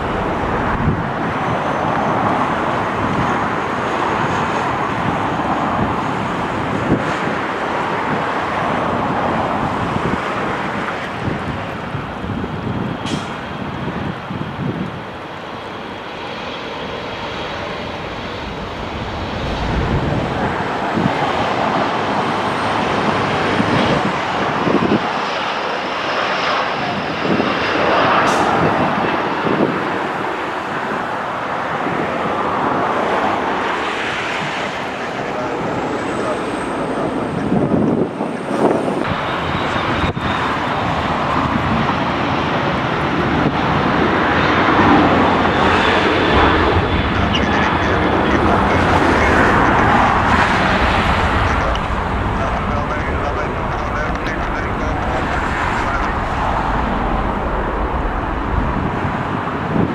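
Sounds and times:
jet engines rushing: 0:00.0 - 0:59.9
faint high whine: 0:50.8 - 0:59.2.

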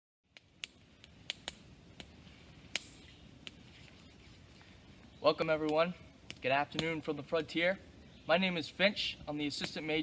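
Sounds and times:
campfire crackling: 0:00.2 - 0:10.0.

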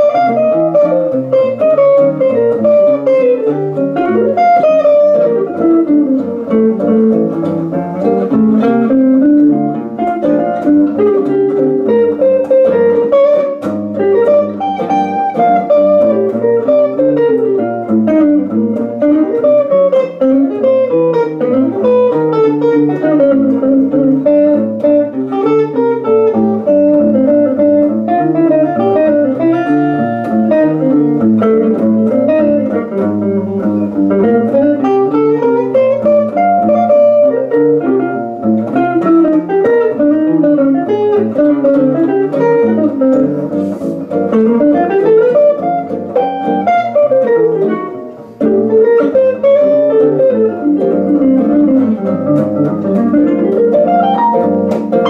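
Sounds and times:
jazz guitar duo: 0:00.0 - 0:55.0.

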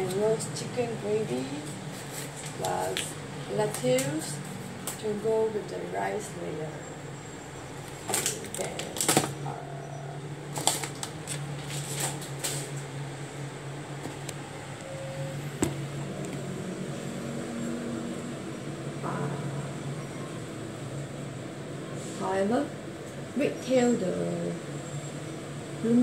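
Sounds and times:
low appliance hum: 0:00.0 - 0:26.0.

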